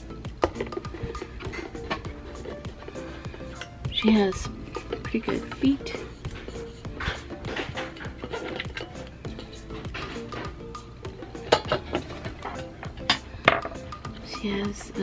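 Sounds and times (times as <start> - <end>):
background music: 0.0 - 15.0
metallic clicks and knocks: 4.8 - 10.6.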